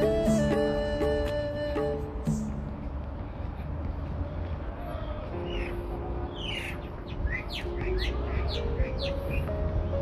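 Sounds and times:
soft background music: 0.0s - 10.0s
songbird chirping: 4.9s - 10.0s.

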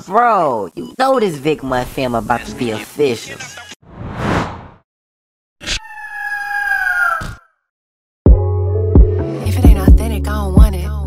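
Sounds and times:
shrill eagle screech: 5.6s - 7.6s.

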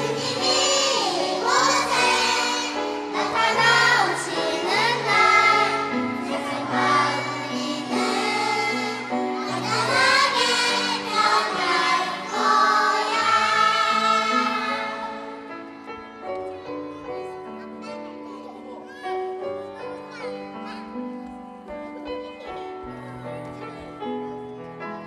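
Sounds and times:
children and adults singing: 0.0s - 15.5s.

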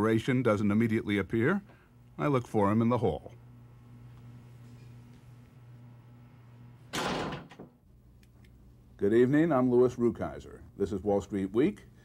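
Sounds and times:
wooden door shutting: 6.9s - 7.8s.

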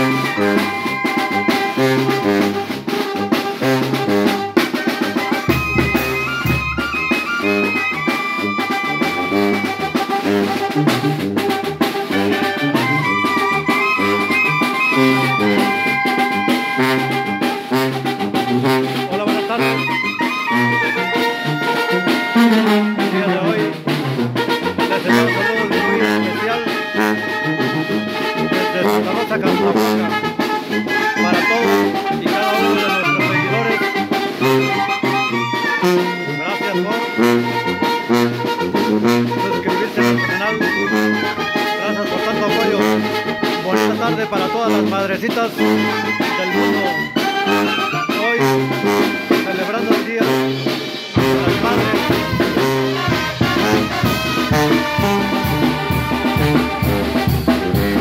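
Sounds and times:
clarinets and trumpets melody: 0.0s - 58.0s
cymbal and drum beat: 0.0s - 58.0s
sousaphone bass line: 0.0s - 58.0s
wind band playing: 0.0s - 58.0s.

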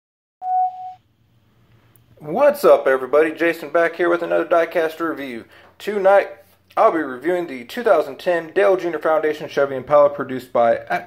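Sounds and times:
electronic beep: 0.4s - 1.0s.

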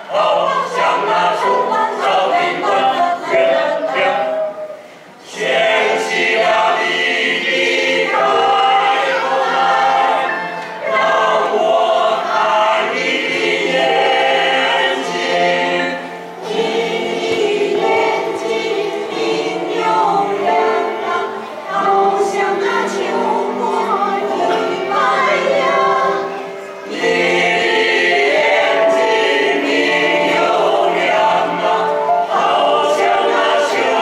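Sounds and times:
mixed choir singing: 0.0s - 34.0s.

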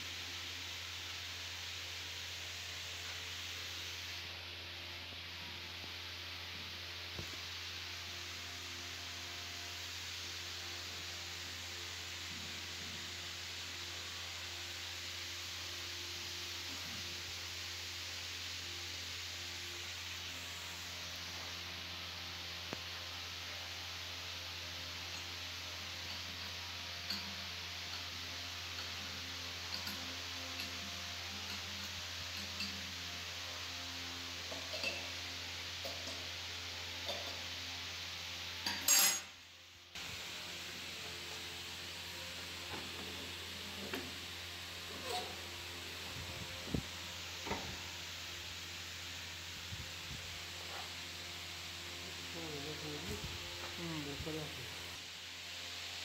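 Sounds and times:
low hum and hiss: 0.0s - 56.0s.

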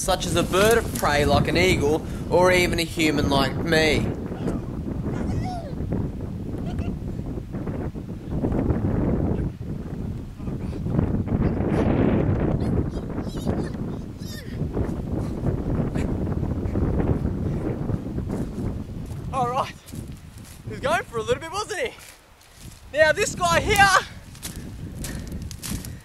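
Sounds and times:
wind buffeting microphone: 0.0s - 26.0s
footsteps through dry brush: 0.4s - 1.3s, 18.3s - 20.7s, 21.9s - 23.0s, 23.8s - 26.0s.

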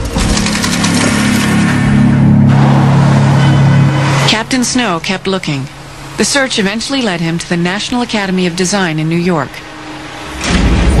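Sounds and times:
loud low engine-like hum: 0.0s - 11.0s.

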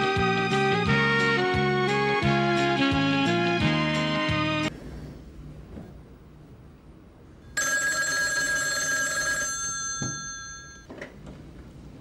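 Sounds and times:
telephone bell ringing: 7.6s - 10.9s.

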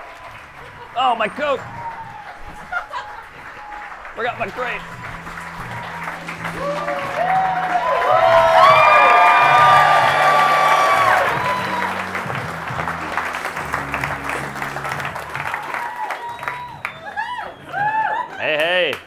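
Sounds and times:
audience applauding and whooping: 0.0s - 19.0s
walk-on music with bass line: 4.0s - 18.2s.

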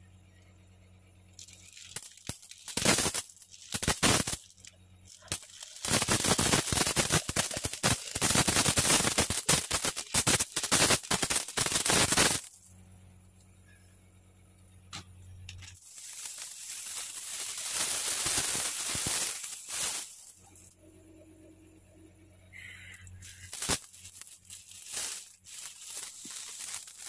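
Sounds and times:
coins pouring and clinking: 1.4s - 12.7s, 15.5s - 20.8s, 23.2s - 27.0s.

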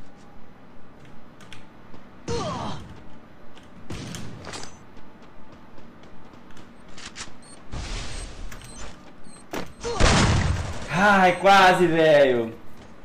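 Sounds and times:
video game shooting clicks: 6.4s - 9.8s.

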